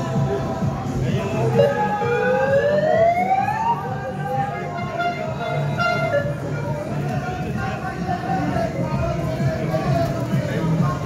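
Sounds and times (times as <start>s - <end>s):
music playing: 0.0s - 11.0s.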